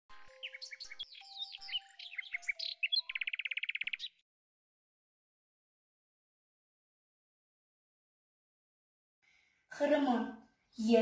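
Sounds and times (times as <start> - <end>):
bird trill: 0.2 - 4.2
bird chirping and whistling: 0.3 - 4.2.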